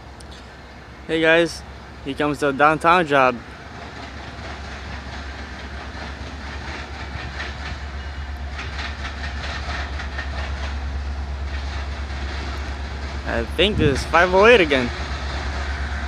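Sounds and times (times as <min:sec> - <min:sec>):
locomotive engine rumble: 0:00.0 - 0:16.0
wheels clicking over rail joints: 0:00.1 - 0:16.0.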